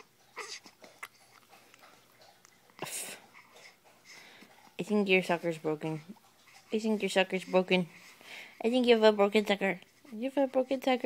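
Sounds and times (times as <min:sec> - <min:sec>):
baby whimpering squeak: 0:00.0 - 0:00.7.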